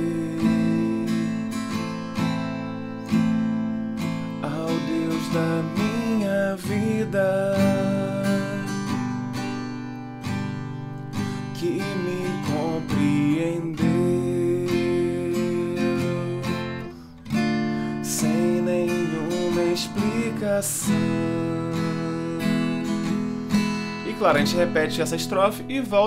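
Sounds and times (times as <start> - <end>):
man singing: 0.0 - 1.9, 4.4 - 9.0, 11.5 - 16.9, 18.0 - 23.2, 24.0 - 26.0
acoustic guitar strumming: 0.0 - 26.0.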